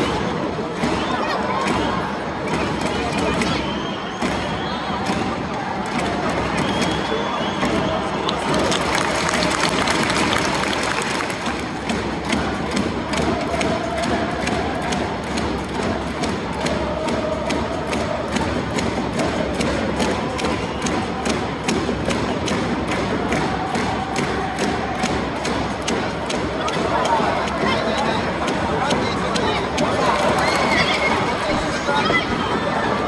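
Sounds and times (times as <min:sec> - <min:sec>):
crowd chanting: 0:00.0 - 0:33.0
drum beat: 0:07.6 - 0:33.0.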